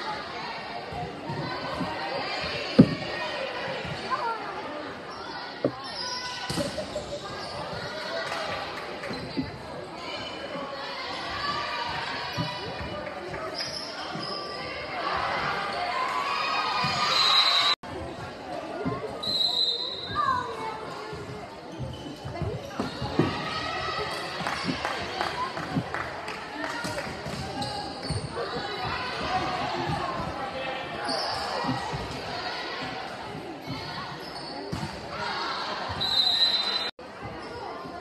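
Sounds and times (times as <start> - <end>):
spectators chatter: 0.0 - 38.0.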